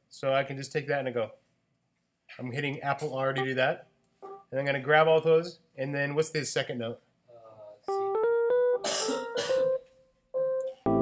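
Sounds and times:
electric piano notes: 4.2 - 4.5, 7.9 - 11.0
piano chords: 4.2 - 4.5, 7.9 - 9.8, 10.4 - 11.0.

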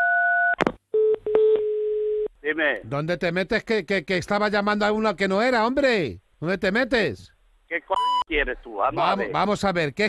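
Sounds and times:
dial tone: 0.0 - 2.3
steady telephone tone: 0.0 - 2.3.

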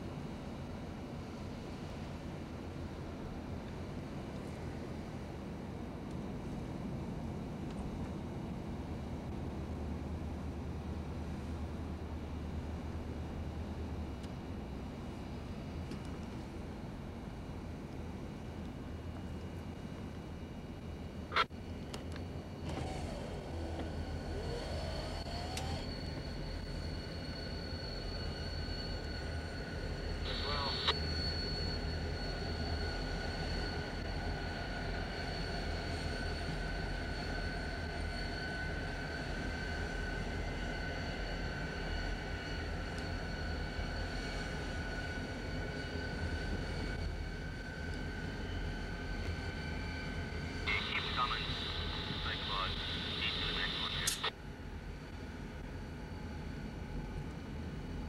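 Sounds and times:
locomotive engine drone: 0.0 - 58.0.

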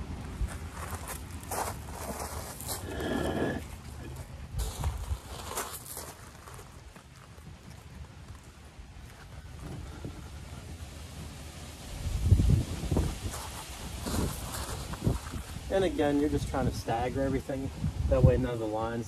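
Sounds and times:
footsteps crunching on gravel: 0.3 - 9.4, 13.2 - 16.1.

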